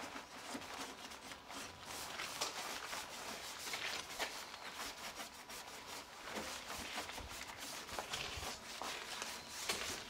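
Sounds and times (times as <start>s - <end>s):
towel rubbing car bodywork: 0.0s - 10.0s.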